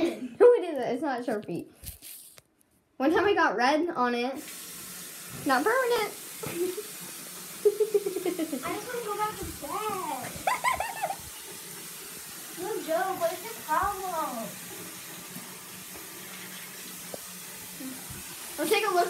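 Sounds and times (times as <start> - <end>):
tap running into a sink: 8.3 - 18.5.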